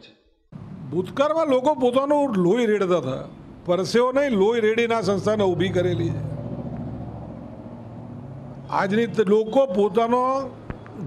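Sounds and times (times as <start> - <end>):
vehicle engine rumble: 4.9 - 8.9.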